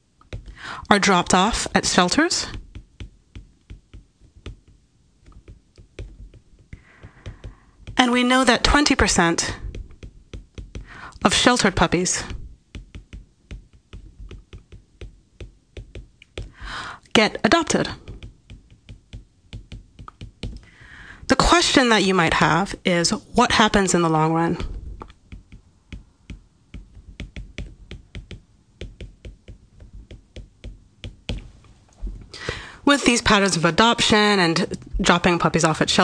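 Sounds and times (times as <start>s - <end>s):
stylus tapping on tablet screen: 0.0s - 32.7s.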